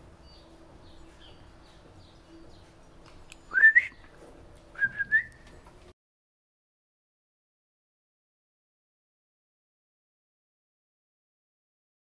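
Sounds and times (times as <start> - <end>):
rising whistles: 3.5 - 4.0, 4.8 - 5.4.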